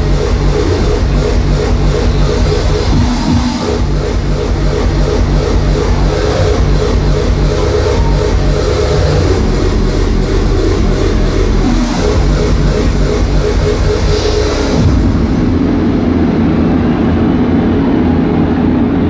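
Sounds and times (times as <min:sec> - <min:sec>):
hardstyle dance music: 0:00.0 - 0:16.8.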